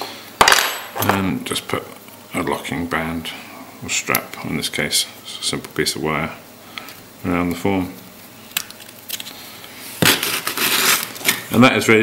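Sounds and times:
gritty crunching and scraping: 0:10.0 - 0:11.5.

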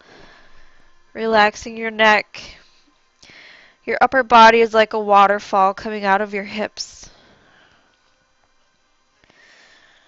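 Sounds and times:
faint breath through nose: 0:09.2 - 0:10.0.

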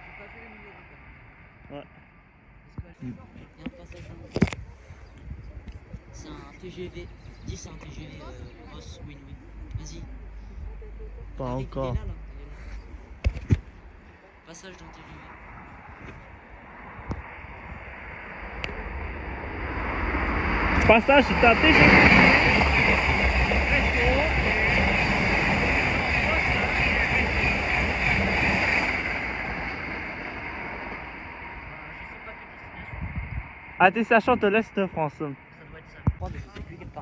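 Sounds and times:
high whine of train: 0:00.0 - 0:37.0
high-speed train passing: 0:00.0 - 0:37.0.

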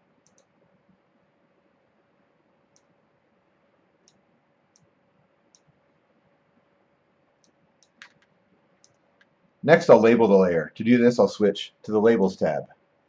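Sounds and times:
faint steady hum: 0:00.0 - 0:13.0
computer mouse clicks: 0:00.2 - 0:00.5, 0:02.7 - 0:02.9, 0:04.0 - 0:04.9, 0:05.5 - 0:05.8, 0:07.4 - 0:09.4.

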